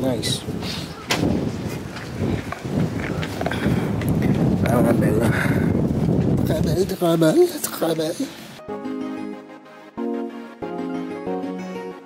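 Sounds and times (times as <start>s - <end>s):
wind buffeting microphone: 0.0s - 7.5s.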